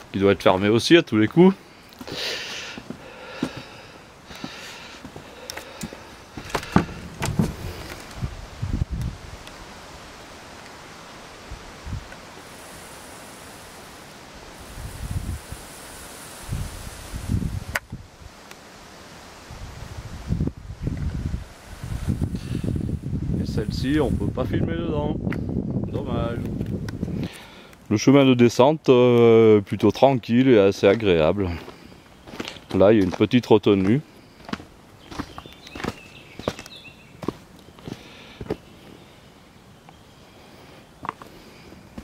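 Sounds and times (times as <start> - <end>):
steady rustling hiss: 0.0 - 42.0
wind buffeting microphone: 6.4 - 9.5, 11.5 - 12.1, 14.6 - 15.7, 16.4 - 18.4, 19.4 - 27.4.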